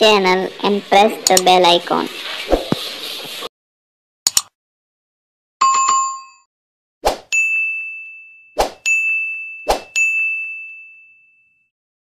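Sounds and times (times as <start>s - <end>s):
bright bell-like ding: 7.3s - 11.6s.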